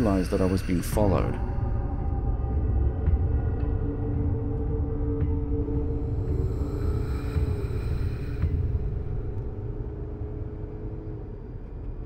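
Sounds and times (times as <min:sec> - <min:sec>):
dark ambient music: 0:00.0 - 0:12.0
steady low rumble: 0:00.0 - 0:12.0.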